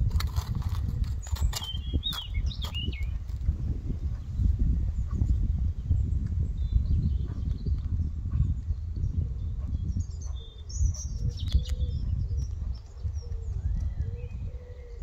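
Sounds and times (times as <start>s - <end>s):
birds chirping: 0.7s - 15.0s.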